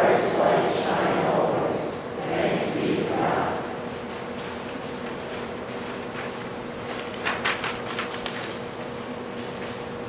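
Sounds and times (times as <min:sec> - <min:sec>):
person talking: 0:00.0 - 0:03.8.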